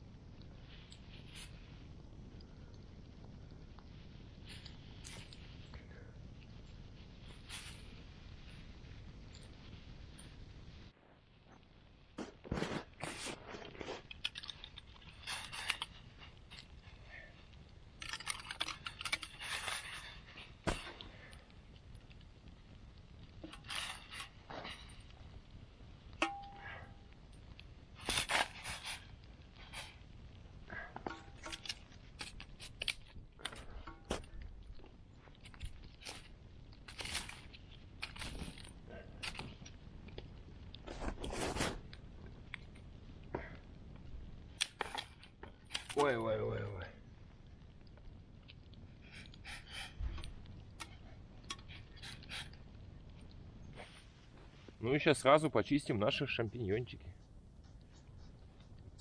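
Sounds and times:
crackling campfire: 0:00.0 - 0:59.0.

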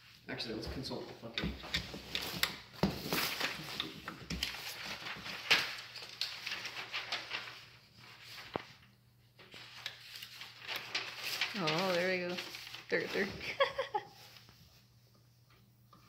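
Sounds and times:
cats scrabbling on packing material: 0:01.6 - 0:08.7, 0:09.6 - 0:14.6.

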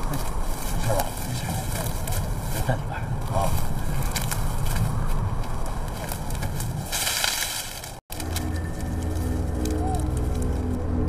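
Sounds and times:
rustling and shuffling: 0:00.0 - 0:11.0
tense background music drone: 0:08.1 - 0:11.0.

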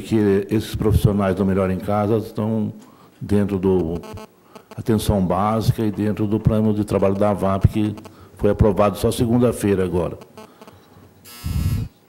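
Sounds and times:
loud electric buzzer: 0:04.0 - 0:04.8, 0:07.6 - 0:08.2, 0:10.2 - 0:12.0.

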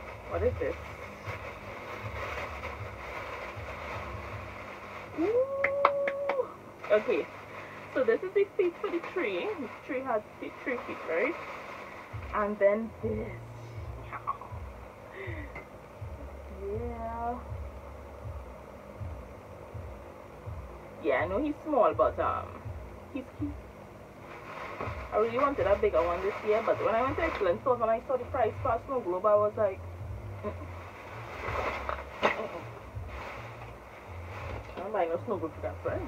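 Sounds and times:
plastic bag rustling: 0:00.0 - 0:05.6, 0:06.8 - 0:13.4, 0:24.2 - 0:28.0, 0:30.4 - 0:36.0
faint steady hum: 0:00.0 - 0:36.0
low uneven rumble: 0:00.0 - 0:36.0.

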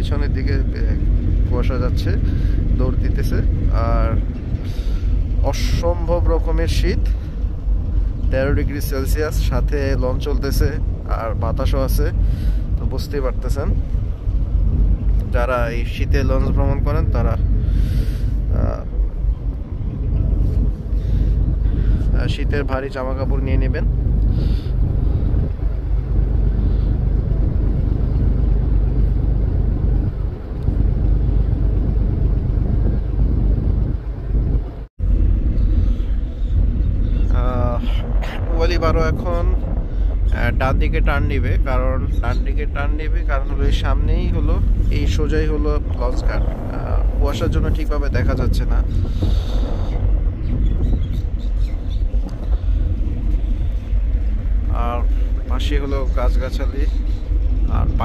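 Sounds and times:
water rushing along hull: 0:00.0 - 0:50.5
boat engine drone: 0:00.0 - 0:58.0
wind: 0:00.0 - 0:58.0.

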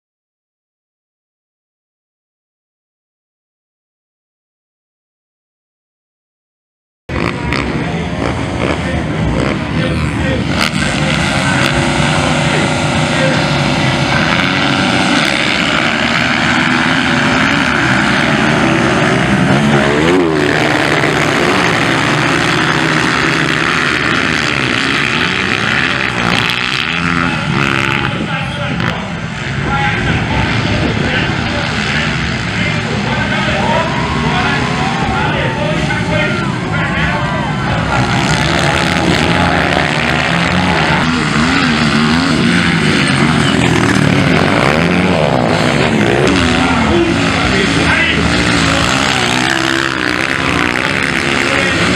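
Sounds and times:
motocross bikes revving and racing: 0:07.1 - 0:51.9.

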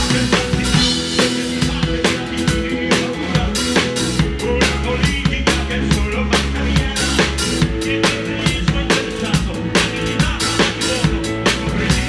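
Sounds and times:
drum kit beat: 0:00.0 - 0:12.0
live rock band playing: 0:00.0 - 0:12.0.

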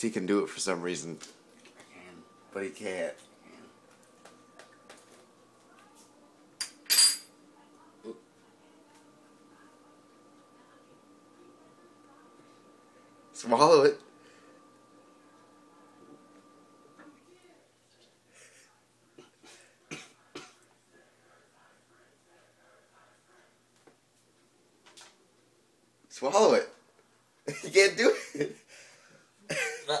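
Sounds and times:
metal spoon clinking on dishes: 0:06.6 - 0:07.3.

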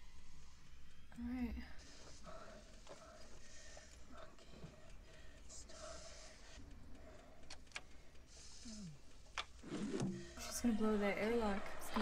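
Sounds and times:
slow breathing: 0:01.8 - 0:10.4.

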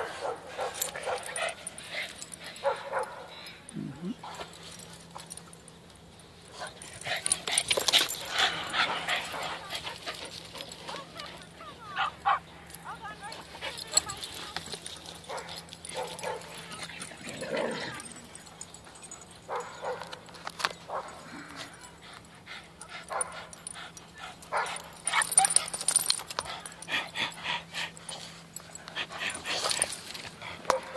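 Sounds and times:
dogs barking and yipping: 0:00.0 - 0:03.3, 0:06.4 - 0:30.9.

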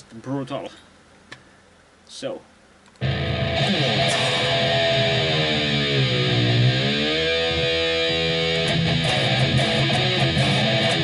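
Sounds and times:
distorted electric guitar chord: 0:03.0 - 0:11.0.

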